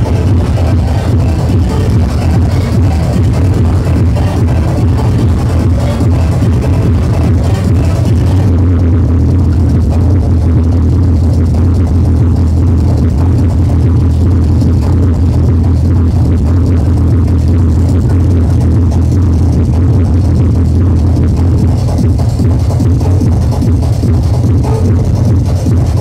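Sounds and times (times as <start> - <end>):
hardcore techno over sound system: 0.0 - 26.0.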